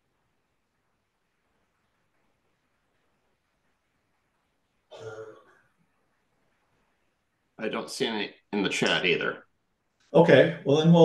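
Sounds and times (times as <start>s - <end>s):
man clearing his throat: 4.9s - 5.7s.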